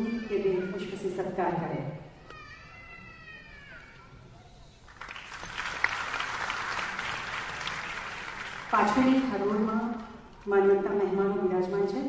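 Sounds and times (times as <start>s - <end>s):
audience applauding: 4.8s - 9.4s.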